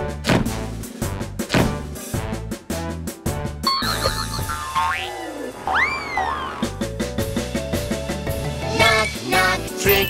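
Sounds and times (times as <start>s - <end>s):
springy cartoon boing: 3.8s - 6.7s
warbling cartoon tone: 3.8s - 6.7s.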